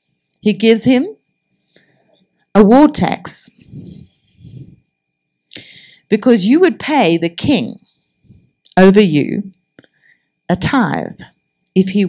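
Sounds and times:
woman speaking into microphone: 0.4s - 1.2s, 2.6s - 3.6s, 6.1s - 7.8s, 8.7s - 9.5s, 10.5s - 12.0s.

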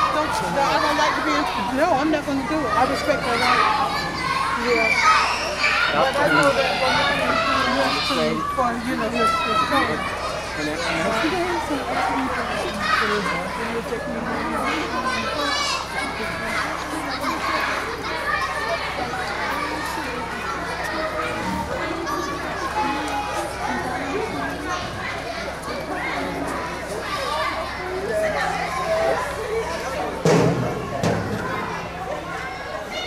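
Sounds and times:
adult voices: 0.0s - 33.0s
children chattering and calling out: 0.0s - 33.0s.

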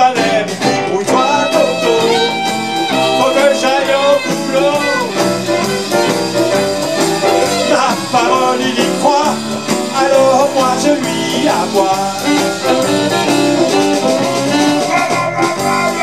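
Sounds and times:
live jazz band playing: 0.0s - 16.0s
saxophone lines: 1.0s - 16.0s.

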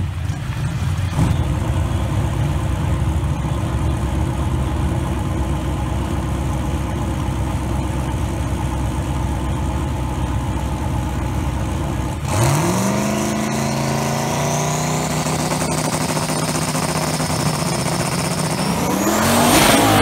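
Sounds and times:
race car engines idling: 0.0s - 20.0s
engine revving up: 12.2s - 20.0s.

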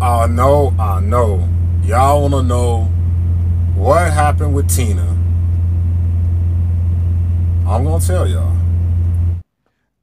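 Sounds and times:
diesel engine idling: 0.0s - 9.4s.

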